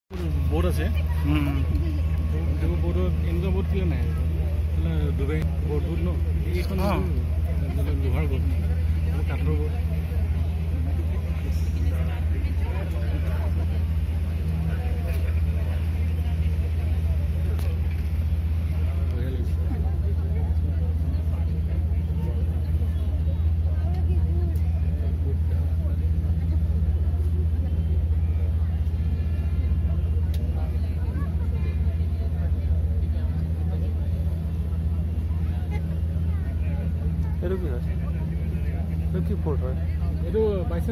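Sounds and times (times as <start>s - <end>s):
boat engine drone: 0.1s - 40.9s
faint voices chattering: 0.1s - 40.9s.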